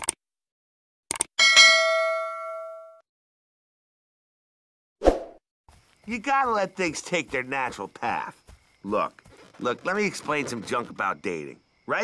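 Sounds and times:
notification bell ding: 1.4s - 3.0s.

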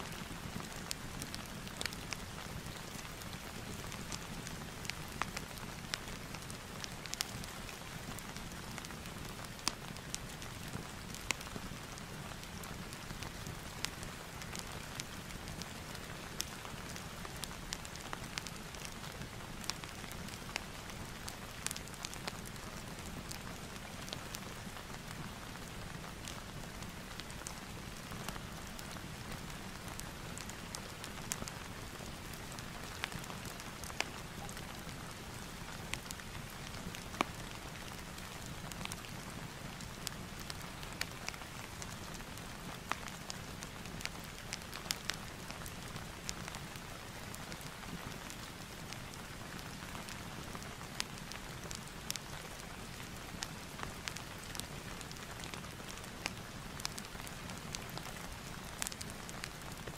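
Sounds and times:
fireplace crackling and popping: 0.0s - 59.9s
steady rain hiss: 0.0s - 59.9s.

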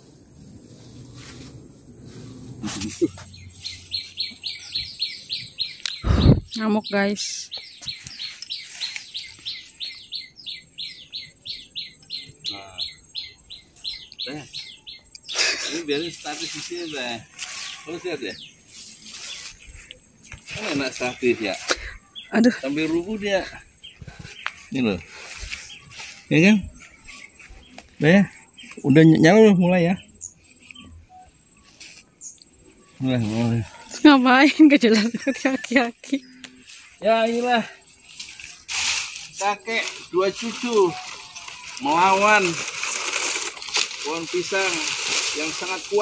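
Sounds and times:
bird chirping: 2.1s - 46.0s.

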